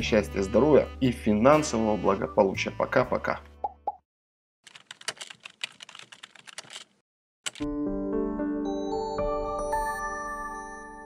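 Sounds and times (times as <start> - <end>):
keyboard key clicks: 4.7 - 6.9, 7.5 - 7.7.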